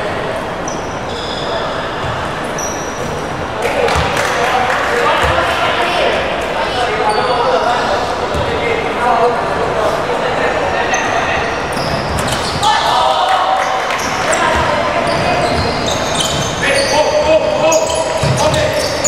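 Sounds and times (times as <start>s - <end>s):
sneaker squeaks: 0.6s - 4.2s, 6.9s - 8.6s, 10.8s - 13.0s, 13.6s - 19.0s.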